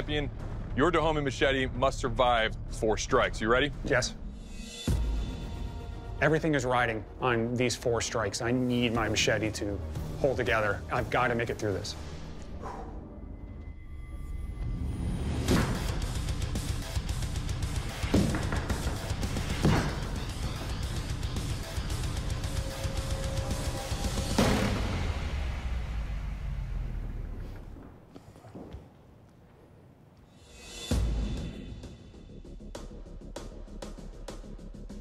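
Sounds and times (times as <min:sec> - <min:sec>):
dramatic background music: 0:00.0 - 0:27.3, 0:30.4 - 0:35.0.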